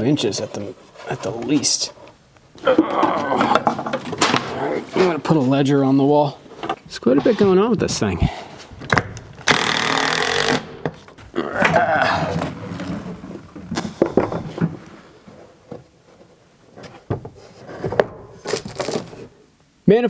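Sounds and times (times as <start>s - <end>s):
cordless drill driving screws: 9.4s - 10.7s.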